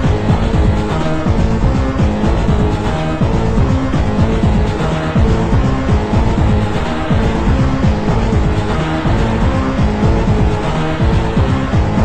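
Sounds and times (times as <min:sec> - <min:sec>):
techno house dance music: 0:00.0 - 0:12.0.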